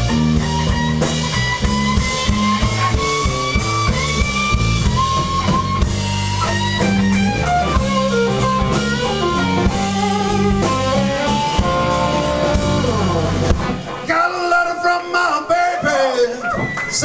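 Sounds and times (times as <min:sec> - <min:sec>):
electric guitar lead with bent notes: 0:00.0 - 0:15.2
bass guitar: 0:00.0 - 0:15.4
drum kit: 0:00.0 - 0:15.4.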